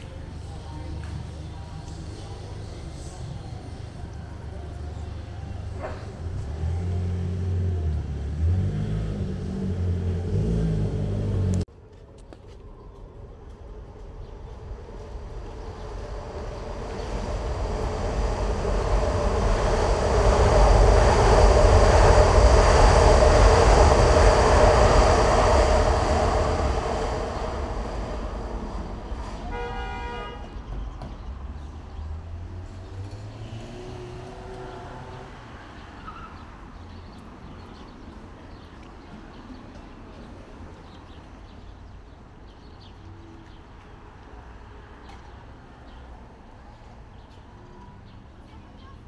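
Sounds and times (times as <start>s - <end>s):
elevated train passing: 0.0s - 11.6s, 13.0s - 38.5s
street traffic rumble: 0.0s - 49.0s
short horn toot: 29.3s - 30.6s.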